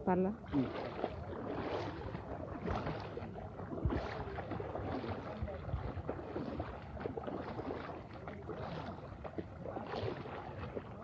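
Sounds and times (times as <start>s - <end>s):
feet wading through water: 0.0s - 11.0s.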